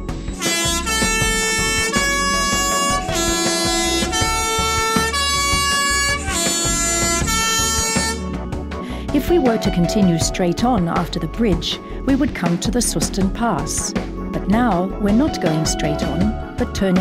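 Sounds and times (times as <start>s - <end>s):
bus three-tone horn: 0.3s - 8.4s.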